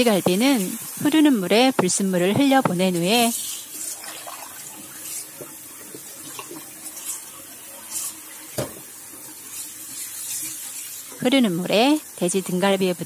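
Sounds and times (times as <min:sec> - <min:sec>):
tap water splashing into pot: 0:03.8 - 0:07.2, 0:07.9 - 0:11.2.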